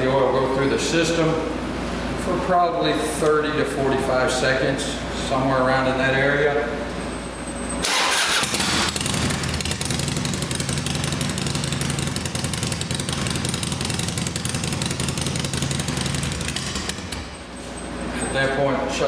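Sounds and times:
motorcycle engine starting and idling: 0:07.8 - 0:17.6.

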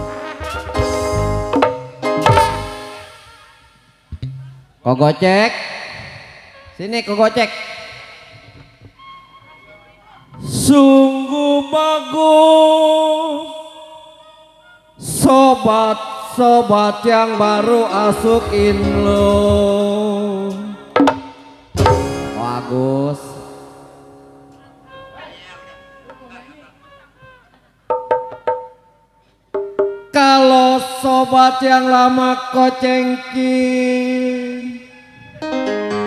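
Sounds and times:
faint ensemble music: 0:00.0 - 0:04.5, 0:08.5 - 0:10.5, 0:17.2 - 0:30.2
sung lines: 0:10.4 - 0:25.2
ensemble held notes: 0:16.7 - 0:21.8.

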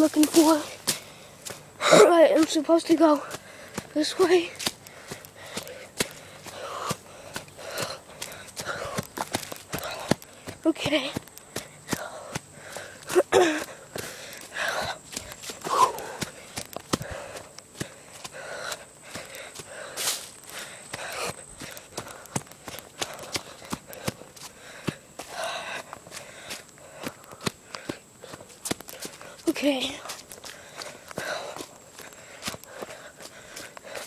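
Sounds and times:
person's voice: 0:00.0 - 0:00.8, 0:01.8 - 0:03.3, 0:03.9 - 0:04.6, 0:10.6 - 0:11.2, 0:29.4 - 0:30.0
footsteps crunching leaves and twigs: 0:00.0 - 0:34.0
person breathing: 0:00.6 - 0:02.0, 0:03.1 - 0:10.6, 0:11.4 - 0:34.0.

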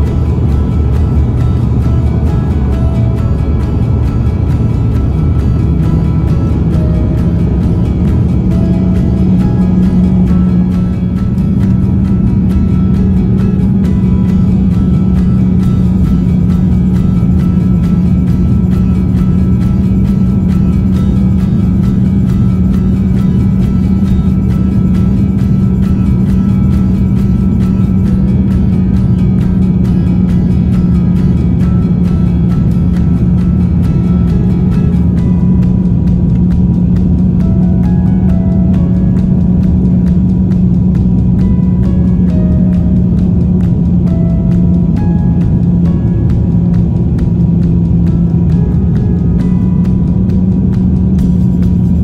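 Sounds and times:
airliner cabin drone: 0:00.0 - 0:52.0
music with held notes: 0:00.0 - 0:52.0.

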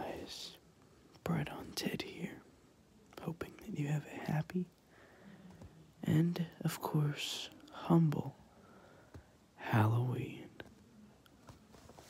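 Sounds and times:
man whispering: 0:00.0 - 0:08.5, 0:09.6 - 0:10.8.

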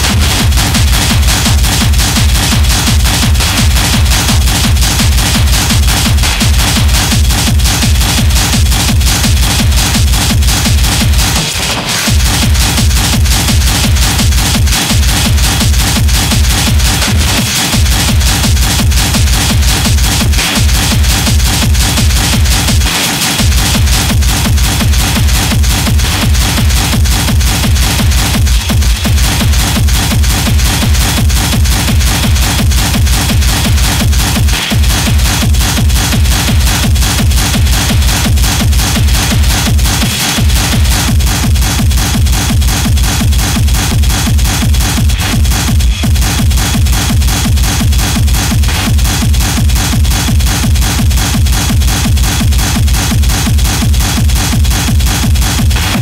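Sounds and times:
hard techno music: 0:00.0 - 0:56.0
heavy kick drum: 0:00.0 - 0:56.0.

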